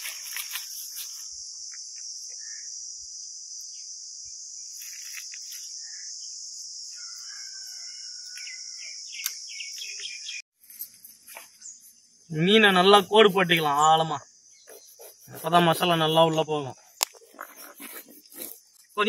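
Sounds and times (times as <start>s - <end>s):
high-pitched insect drone: 0.0s - 19.0s
bird chirps and calls: 8.3s - 10.4s.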